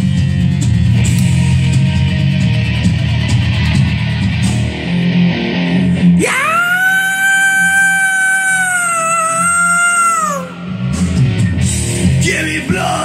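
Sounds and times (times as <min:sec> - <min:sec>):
heavy rock band with electric guitar: 0:00.0 - 0:13.0
singer's high wordless scream: 0:06.2 - 0:10.9.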